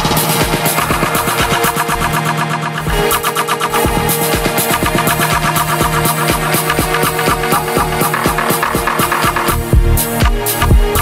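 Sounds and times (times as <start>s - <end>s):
kick drum: 0.0s - 2.1s, 2.8s - 3.2s, 3.8s - 11.0s
house dance music: 0.0s - 11.0s.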